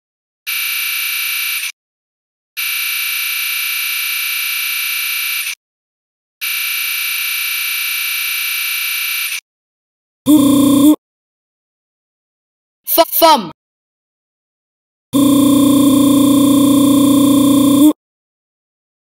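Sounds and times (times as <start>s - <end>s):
synthetic high buzzing tone: 10.3s - 11.0s, 15.2s - 18.0s.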